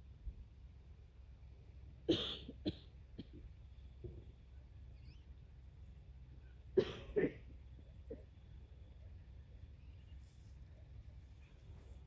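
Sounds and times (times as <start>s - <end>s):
short cough-like burst: 2.1s - 3.3s.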